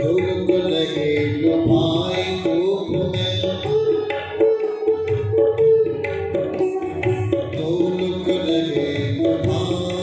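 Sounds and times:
devotional music with bending note: 0:00.0 - 0:10.0.

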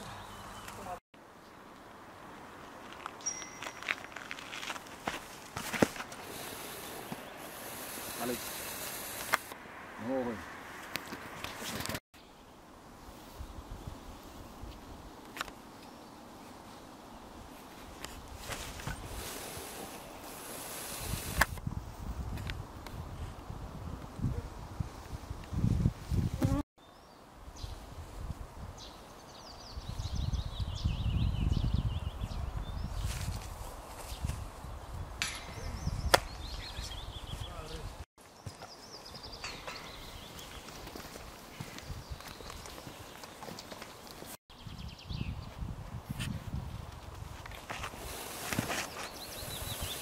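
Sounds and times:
songbirds singing: 0:00.0 - 0:01.6, 0:26.8 - 0:27.9, 0:28.7 - 0:33.2, 0:34.1 - 0:40.9, 0:41.5 - 0:45.7, 0:48.9 - 0:50.0
wind on microphone: 0:20.7 - 0:26.6, 0:29.6 - 0:38.0, 0:41.6 - 0:42.6, 0:44.5 - 0:48.3, 0:49.1 - 0:50.0
sharp crack: 0:35.2 - 0:36.5.

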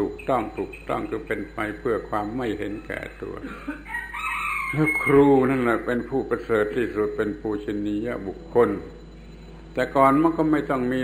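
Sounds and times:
man speaking: 0:00.0 - 0:03.7, 0:04.7 - 0:09.0, 0:09.7 - 0:11.0
rooster crowing: 0:03.7 - 0:05.3.

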